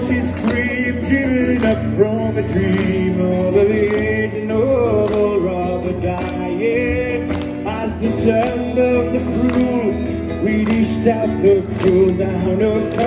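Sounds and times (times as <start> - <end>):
live folk band music: 0.0 - 13.0.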